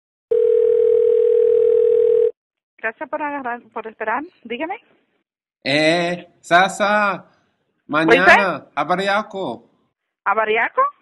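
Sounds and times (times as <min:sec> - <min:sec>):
telephone ringback tone: 0:00.3 - 0:02.4.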